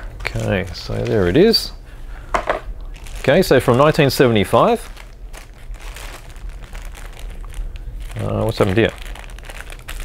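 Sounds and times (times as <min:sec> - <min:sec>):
plastic bag crinkling: 0:00.1 - 0:01.6, 0:02.9 - 0:10.0.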